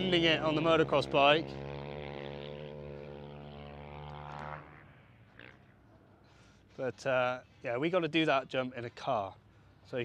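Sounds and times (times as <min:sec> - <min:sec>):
distant motocross bike engine: 0:00.0 - 0:10.0.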